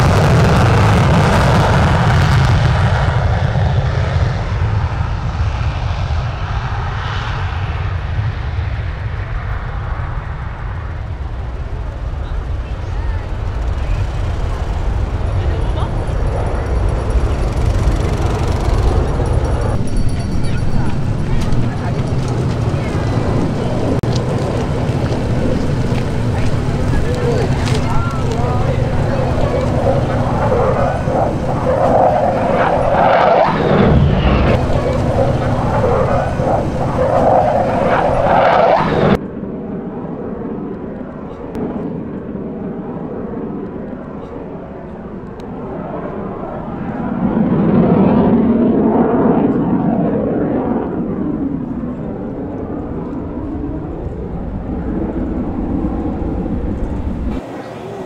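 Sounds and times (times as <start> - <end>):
jet rumble: 0.0 - 58.0
background voices: 12.8 - 39.1.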